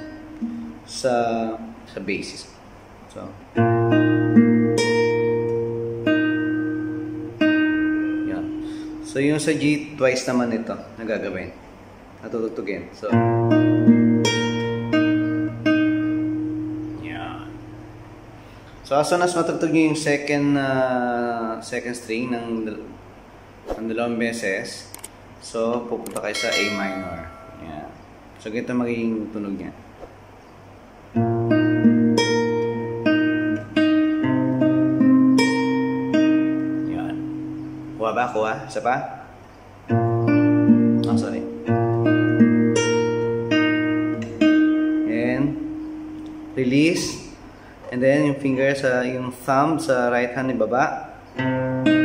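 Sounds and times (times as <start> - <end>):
fingerpicked classical guitar: 0.0 - 1.0, 3.5 - 9.5, 13.1 - 18.1, 31.1 - 38.0, 39.8 - 47.1, 51.3 - 52.0.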